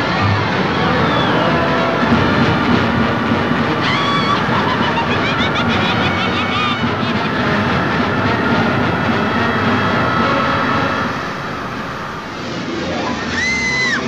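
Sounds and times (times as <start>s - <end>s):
orchestral music: 0.0s - 14.0s
tornado roaring rush: 0.0s - 14.0s.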